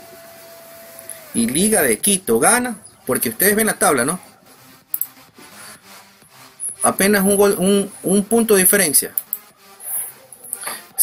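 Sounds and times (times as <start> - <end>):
man speaking: 1.4 - 4.3, 6.8 - 9.2
sharp click: 4.9 - 5.2, 9.2 - 9.4.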